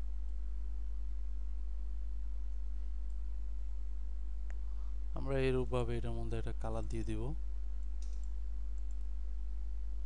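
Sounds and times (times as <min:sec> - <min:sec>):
steady low hum: 0:00.0 - 0:10.0
computer mouse clicks: 0:07.8 - 0:09.1.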